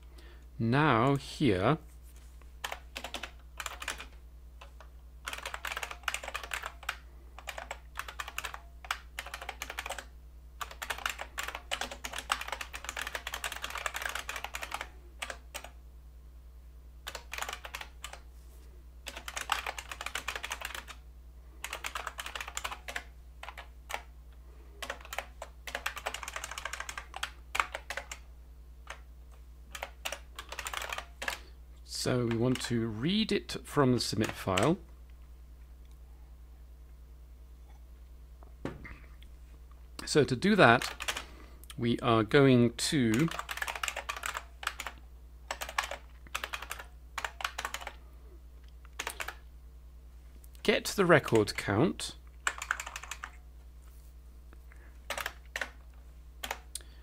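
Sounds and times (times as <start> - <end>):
faint low hum: 0.0 - 57.0
typing on computer keyboard: 2.6 - 15.8, 17.0 - 18.2, 19.0 - 21.0, 21.6 - 24.1, 24.8 - 28.2, 29.7 - 31.5, 40.8 - 41.3, 43.1 - 48.0, 49.0 - 49.4, 52.4 - 53.4, 55.1 - 55.8, 56.4 - 56.7.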